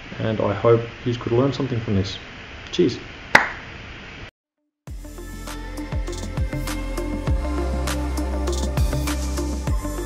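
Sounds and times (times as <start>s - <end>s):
music: 4.9s - 10.0s.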